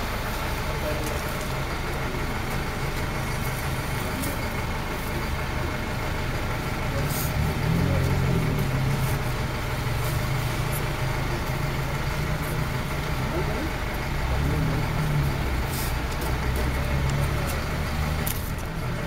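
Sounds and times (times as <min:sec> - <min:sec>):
crowd murmuring: 0:00.0 - 0:19.0
vehicle engine idling: 0:00.0 - 0:19.0.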